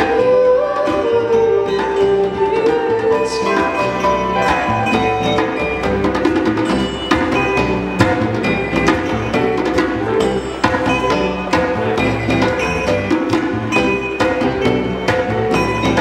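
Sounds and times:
electric guitars: 0:00.0 - 0:16.0
hand drum beat: 0:00.0 - 0:16.0
piano: 0:00.0 - 0:16.0.

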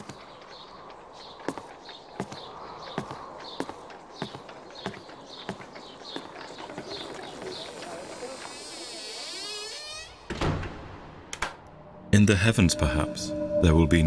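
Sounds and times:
door creaking: 0:06.3 - 0:11.6
door closing thud: 0:09.4 - 0:11.6.

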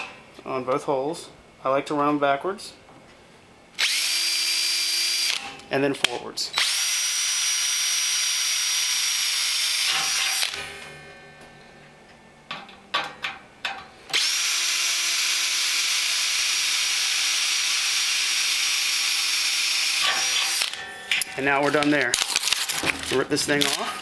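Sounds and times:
power drill drilling into metal: 0:03.8 - 0:05.5, 0:06.6 - 0:10.7, 0:14.1 - 0:20.8.

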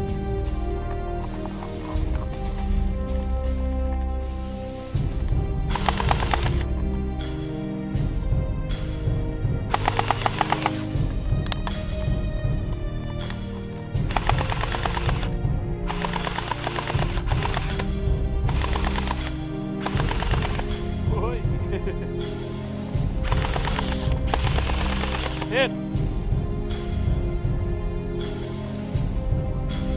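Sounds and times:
background music: 0:00.0 - 0:29.9
gel blaster firing full auto: 0:05.7 - 0:06.6, 0:18.5 - 0:20.6
gel blaster rapid clicks: 0:05.7 - 0:06.7, 0:09.7 - 0:10.9, 0:14.0 - 0:15.3, 0:15.9 - 0:17.9, 0:18.5 - 0:20.8, 0:23.2 - 0:25.6.

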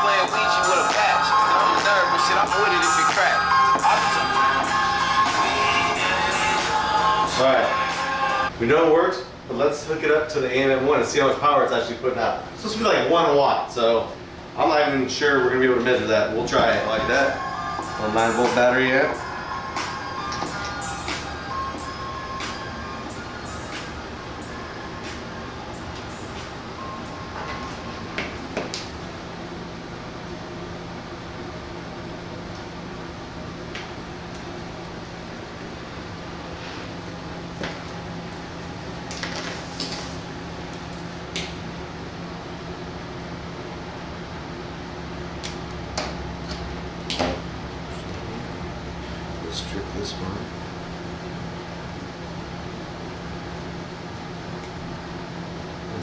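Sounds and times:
faint music from small speaker: 0:00.0 - 0:08.5, 0:16.6 - 0:28.3
steady low hum: 0:00.0 - 0:56.0.

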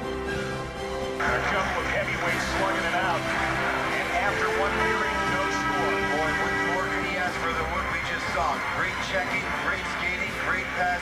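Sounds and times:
background music: 0:00.0 - 0:11.0
arena crowd cheering and shouting: 0:01.2 - 0:11.0.

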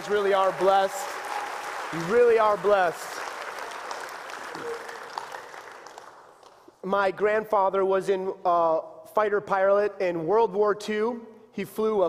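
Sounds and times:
congregation applauding: 0:00.0 - 0:06.8.

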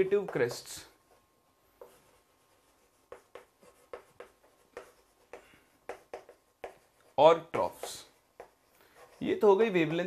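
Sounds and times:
chalk writing on chalkboard: 0:01.8 - 0:10.0.

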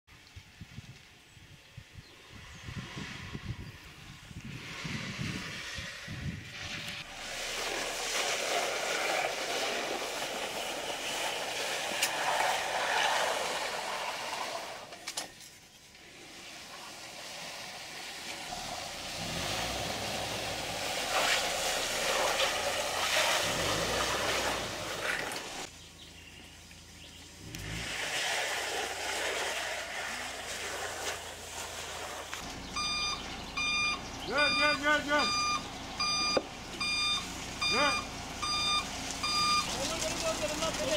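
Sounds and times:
construction site noise: 0:04.8 - 0:40.9
truck engine running: 0:32.0 - 0:40.9
reversing alarm beeping: 0:32.8 - 0:39.7.

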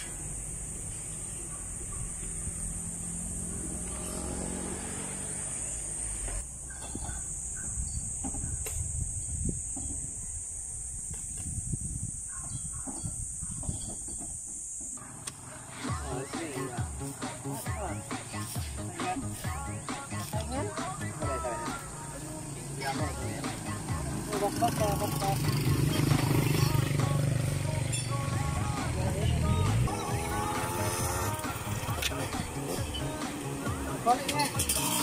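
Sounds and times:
high-pitched drone: 0:15.9 - 0:35.0.

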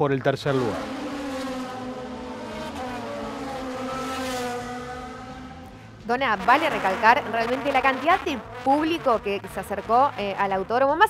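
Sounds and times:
race car engines at high revs: 0:00.0 - 0:11.0.

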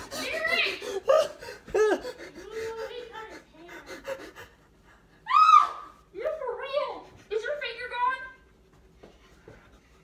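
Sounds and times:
man crying out: 0:00.0 - 0:02.7
man panting: 0:00.0 - 0:05.2.

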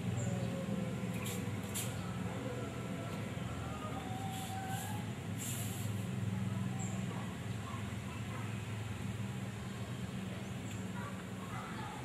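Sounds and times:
brief hiss: 0:04.3 - 0:06.0.

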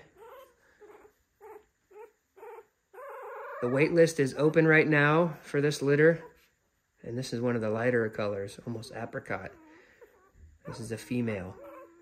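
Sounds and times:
puppy squeaking: 0:00.0 - 0:04.7, 0:09.3 - 0:12.0.

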